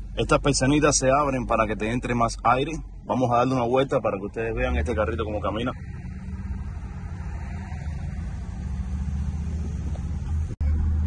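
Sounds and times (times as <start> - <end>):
car engine pulling away: 0.0 - 11.0.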